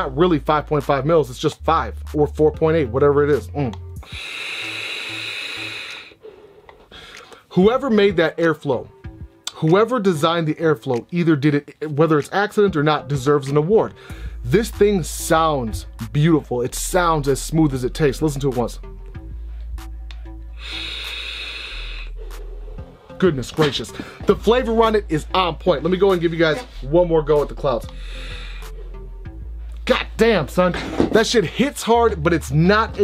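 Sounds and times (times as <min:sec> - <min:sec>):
air hissing through vape airflow: 0:04.0 - 0:06.9, 0:20.5 - 0:23.0.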